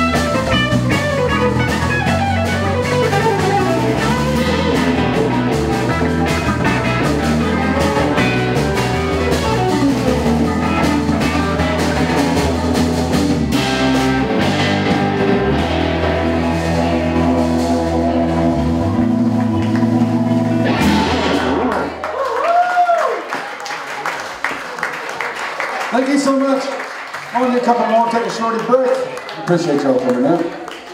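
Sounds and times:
blues-rock band playing: 0.0s - 22.3s
rising and falling tone: 0.9s - 22.6s.

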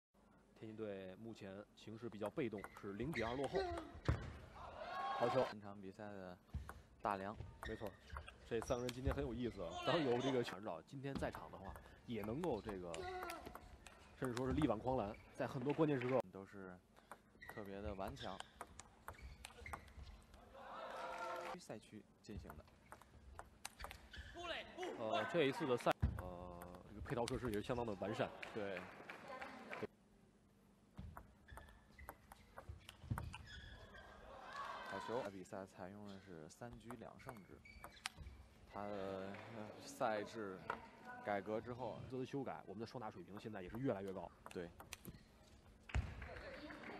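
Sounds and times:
men talking: 8.5s - 13.5s, 14.2s - 16.7s.

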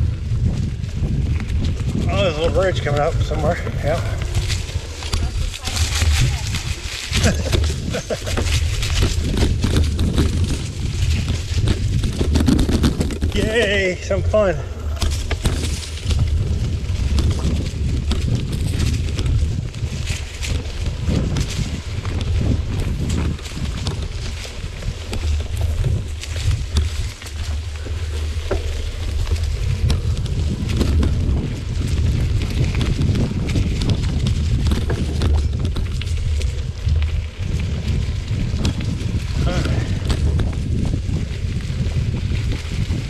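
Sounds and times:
bike parts rattling: 0.0s - 43.0s
tyre and rushing air rumble: 0.0s - 43.0s
tyres crackling over leaves: 0.0s - 43.0s.

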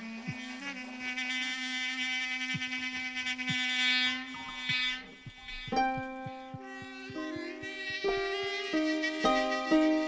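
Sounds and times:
buzzy electronic keyboard drone: 0.0s - 10.0s
low thumps dropping in pitch: 4.5s - 10.0s.

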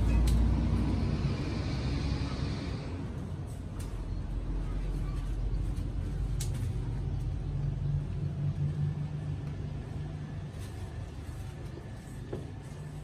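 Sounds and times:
low engine-like rumble: 0.0s - 13.0s.

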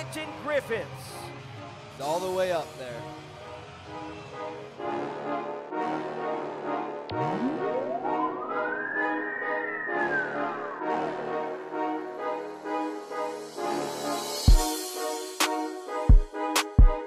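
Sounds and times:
backing music with beat: 7.0s - 17.0s
gliding tone: 7.1s - 11.8s.

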